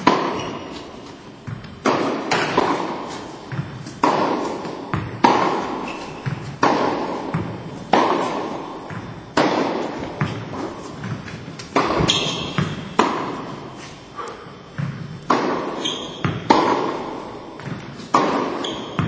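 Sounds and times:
racket hitting tennis ball: 0.0 - 19.0
tennis ball bouncing on court: 0.0 - 19.0.

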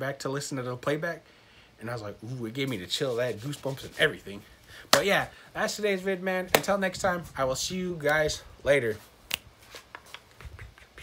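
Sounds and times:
soft rustling: 2.2 - 10.8.

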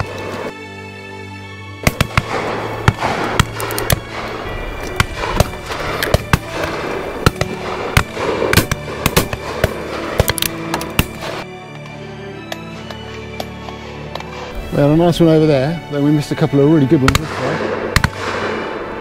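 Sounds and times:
background music: 0.0 - 19.0
shotgun shots: 1.8 - 11.4, 17.0 - 19.0.

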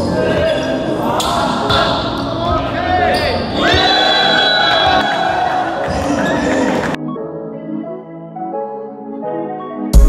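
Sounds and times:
players shouting and cheering: 0.0 - 7.0.

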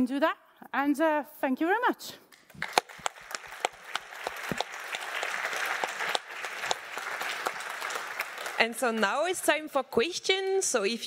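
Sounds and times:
audience applauding: 2.4 - 9.4.

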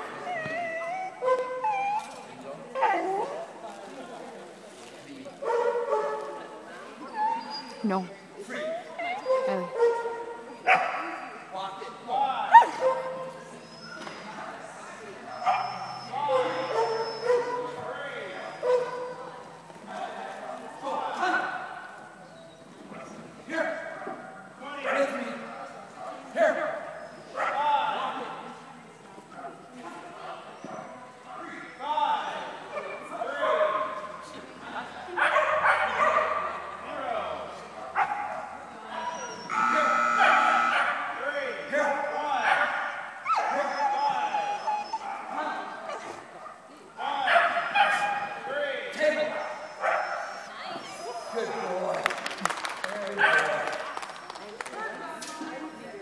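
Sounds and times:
people's voices: 0.0 - 56.0
dog whining: 0.1 - 3.4, 7.0 - 9.8, 15.3 - 17.6, 39.0 - 40.8, 43.2 - 45.2
dog barking: 5.4 - 6.2, 9.7 - 11.2, 15.3 - 17.6, 18.6 - 19.2, 32.8 - 34.0, 35.2 - 36.6, 37.9 - 38.5, 40.2 - 41.1, 47.3 - 48.4, 49.4 - 50.4.

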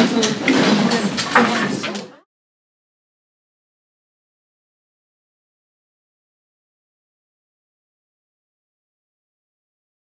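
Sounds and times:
knocks and clatter: 0.0 - 2.2
indistinct voices: 0.0 - 2.3.

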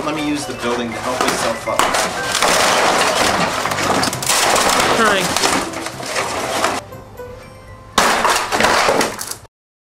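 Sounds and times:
styrofoam crunching and cracking: 1.2 - 6.8, 8.0 - 9.5.

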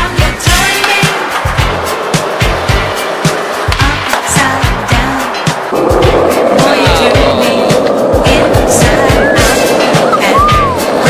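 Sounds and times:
background music with beat: 0.0 - 11.0
skateboard wheels rolling: 0.0 - 11.0.

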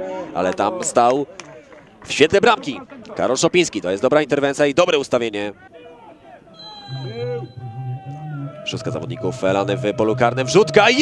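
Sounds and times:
men calling out: 5.5 - 11.0.

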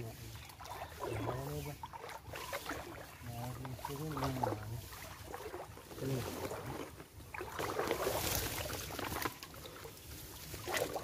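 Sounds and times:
leaves and twigs rustling: 0.0 - 11.0
water splashing from wading: 0.0 - 11.0.

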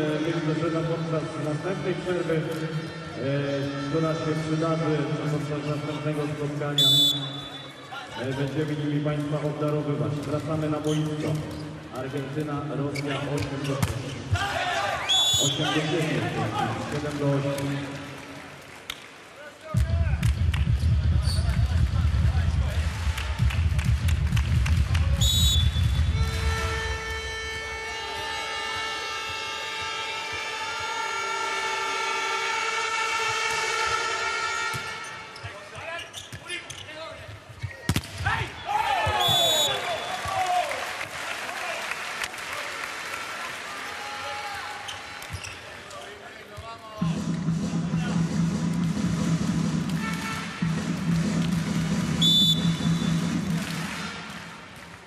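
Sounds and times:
short high whistle blasts: 6.8 - 7.9, 15.0 - 15.6, 25.2 - 28.2, 39.1 - 40.2, 52.2 - 53.1
music over speakers: 19.8 - 34.7, 46.9 - 54.7.

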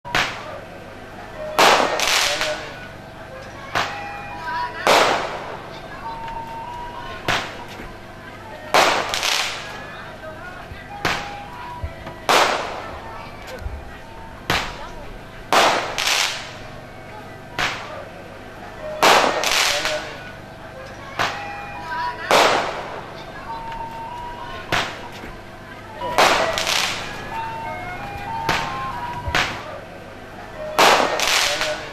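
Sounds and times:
faint voices: 0.0 - 31.9
firecrackers banging: 0.1 - 31.9
music: 0.1 - 31.9
loud sharp bang: 1.6 - 2.7, 4.8 - 5.6, 8.7 - 9.8, 11.0 - 11.6, 12.2 - 12.9, 14.4 - 14.8, 15.5 - 16.6, 19.0 - 20.1, 22.3 - 23.0, 26.0 - 27.2, 28.4 - 29.8, 30.8 - 31.9.

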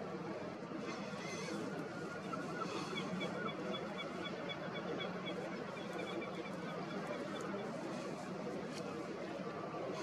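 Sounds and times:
outdoor noise: 0.0 - 10.0
birds chirping: 0.9 - 8.2.

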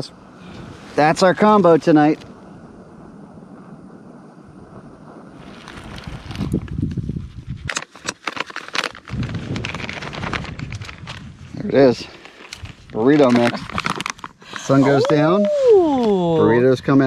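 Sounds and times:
wind buffeting microphone: 0.0 - 7.7, 9.0 - 14.0.

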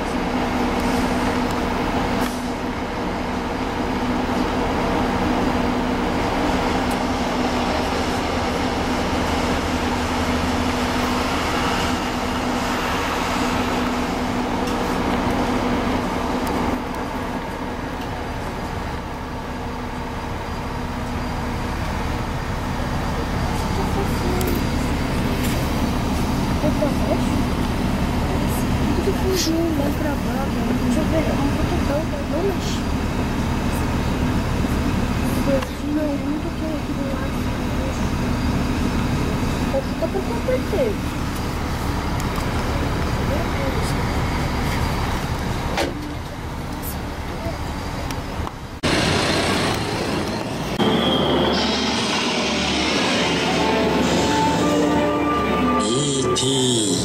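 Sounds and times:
vehicle engine rumble: 0.0 - 54.9
traffic noise: 0.0 - 57.0
indistinct voices: 50.8 - 57.0.

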